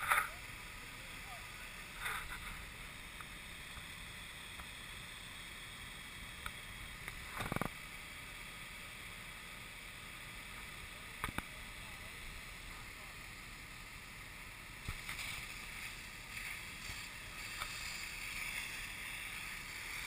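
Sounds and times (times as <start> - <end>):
hose water rushing hiss: 0.0 - 20.0.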